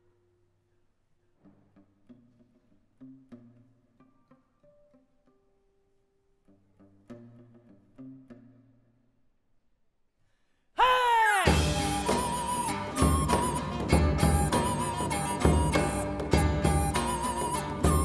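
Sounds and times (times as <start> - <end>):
plucked lute notes: 1.4 - 9.2, 11.5 - 18.0.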